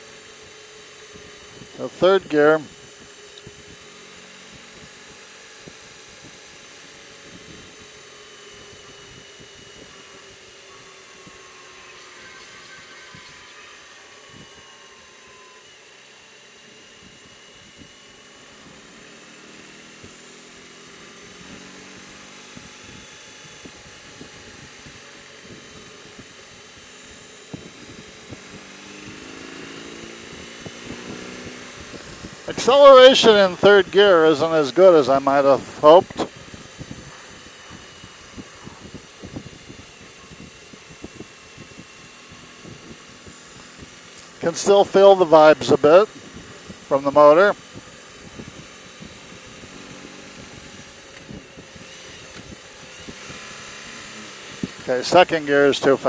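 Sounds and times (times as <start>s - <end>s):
motorcycle engine running: 0.0s - 56.0s
wind noise: 4.5s - 15.5s, 21.5s - 44.3s, 45.4s - 55.0s.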